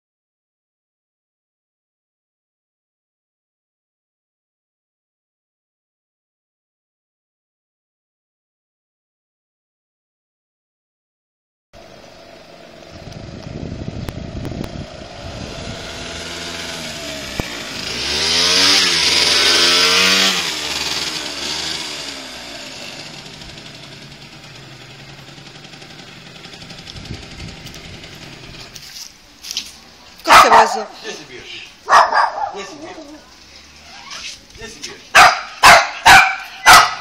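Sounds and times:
motor scooter engine passing: 11.8 - 29.0, 31.9 - 34.4, 35.1 - 37.0.

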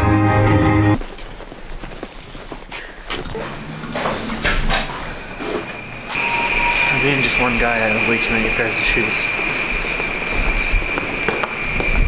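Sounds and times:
high-pitched whine: 3.2 - 12.0.

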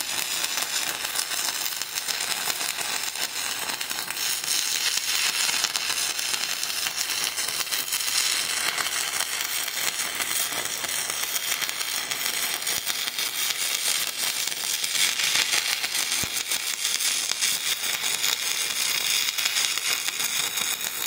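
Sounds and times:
welding arc crackling hiss: 0.0 - 21.0.

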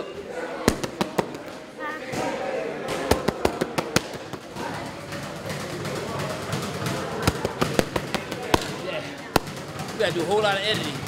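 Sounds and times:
boxing gloves smacking mitts: 0.7 - 1.6, 2.9 - 11.0.

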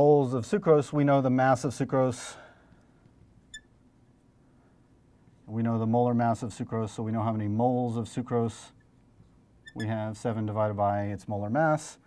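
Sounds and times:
marker squeaking on glass: 3.4 - 3.8, 9.6 - 10.0.

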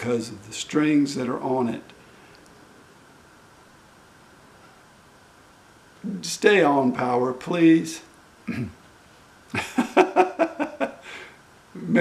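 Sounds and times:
man chuckling: 8.5 - 8.8, 9.5 - 12.0.

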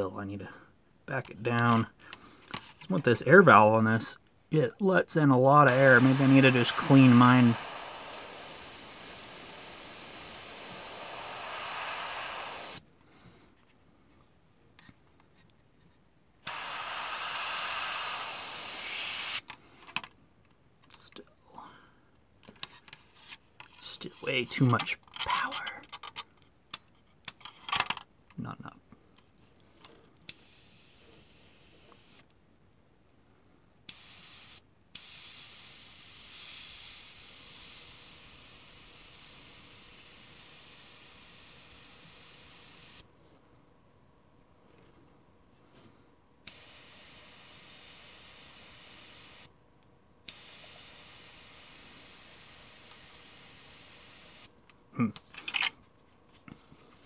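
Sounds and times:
airbrush spraying hiss: 5.6 - 12.9, 16.4 - 19.4, 30.3 - 32.3, 33.9 - 43.1, 46.4 - 49.5, 50.3 - 54.5.

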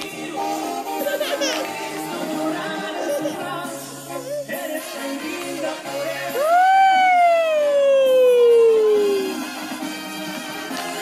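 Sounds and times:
background music: 0.0 - 11.0
toddler crying wail: 1.0 - 1.8, 6.4 - 9.4.

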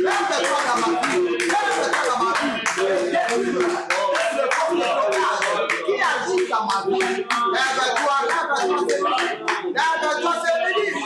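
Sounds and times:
hand claps: 0.0 - 10.8
voices praying aloud: 0.0 - 11.0.

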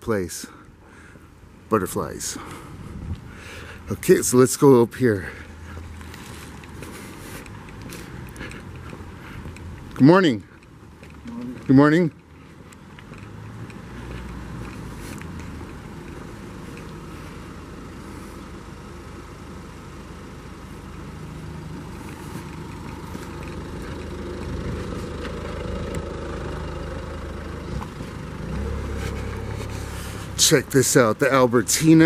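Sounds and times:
traffic noise with low rumble: 0.0 - 32.0.

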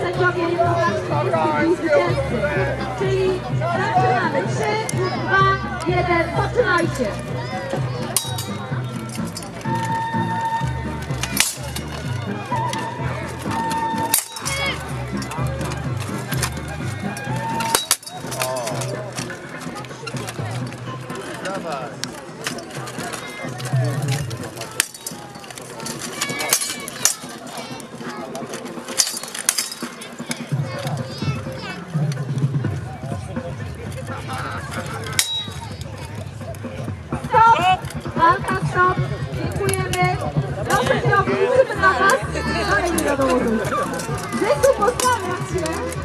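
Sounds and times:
background music: 0.0 - 46.0
crowd voices: 0.0 - 46.0
swords clanking on armour: 17.6 - 19.0.

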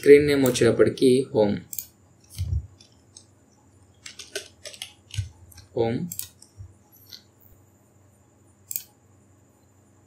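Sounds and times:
computer mouse click: 1.7 - 3.3, 4.0 - 7.3, 8.7 - 9.0.

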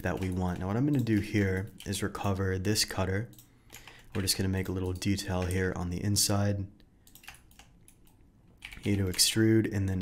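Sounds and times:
computer keyboard keystrokes: 0.0 - 2.3, 3.1 - 5.8, 7.0 - 9.4
man talking: 0.0 - 3.4, 4.1 - 6.8, 8.8 - 10.0.

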